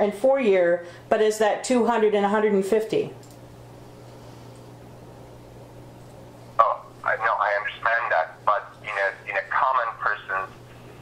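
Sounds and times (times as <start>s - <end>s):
faint low hum: 0.0s - 11.0s
person speaking: 6.6s - 10.6s.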